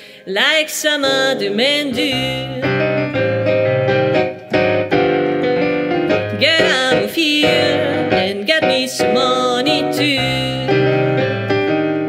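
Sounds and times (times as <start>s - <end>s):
woman singing: 0.2s - 2.8s, 6.3s - 11.4s
stage piano chords and bass: 1.5s - 12.0s.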